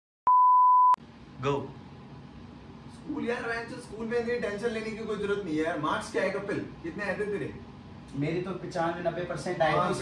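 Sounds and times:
test tone beep: 0.3s - 1.0s.

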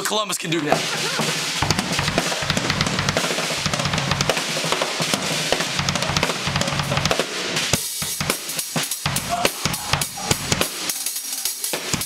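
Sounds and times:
fast drum solo: 0.6s - 12.0s.

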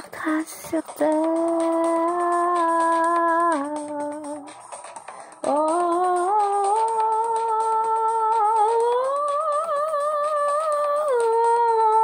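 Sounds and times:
woman singing wordless notes: 0.0s - 4.5s, 5.4s - 12.0s.

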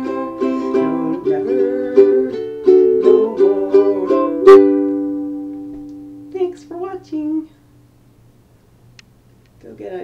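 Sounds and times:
ukulele chord ringing: 0.0s - 6.4s.

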